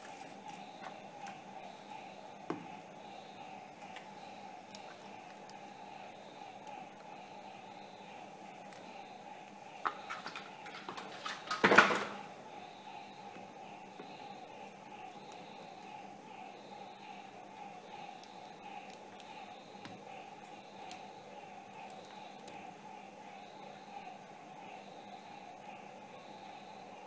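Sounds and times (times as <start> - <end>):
steady pulsing hum: 0.0 - 27.0.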